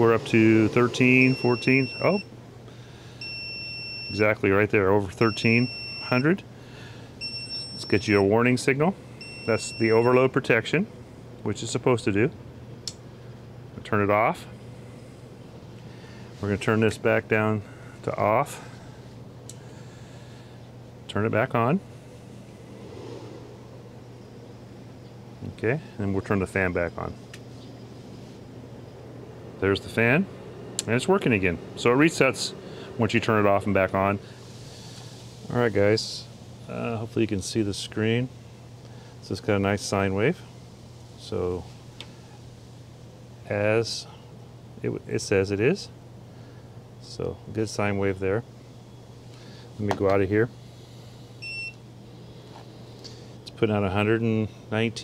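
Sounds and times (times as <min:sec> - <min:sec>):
heater fan humming: 0:00.0 - 0:55.0
short electronic beep: 0:01.2 - 0:02.2.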